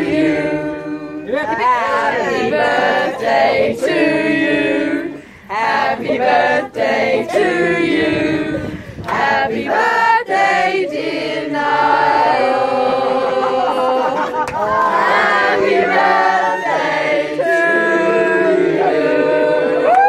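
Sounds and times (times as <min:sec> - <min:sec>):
group of people singing: 0:00.0 - 0:20.0.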